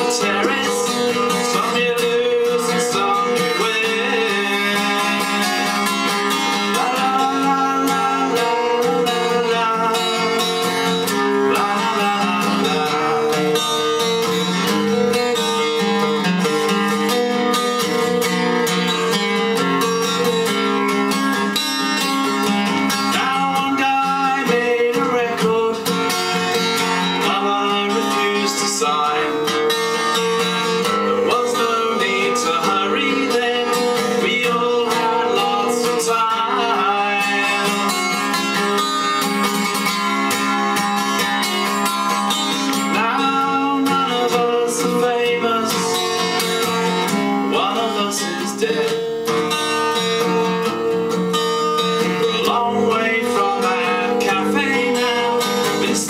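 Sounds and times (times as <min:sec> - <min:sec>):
man singing: 0:00.0 - 0:16.3, 0:21.8 - 0:40.2, 0:41.2 - 0:49.4, 0:51.8 - 0:56.0
acoustic guitar: 0:00.0 - 0:56.0.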